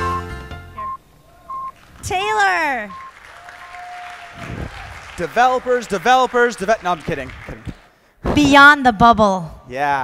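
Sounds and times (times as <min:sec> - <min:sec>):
short electronic beeps: 0:00.8 - 0:01.8, 0:02.9 - 0:03.1.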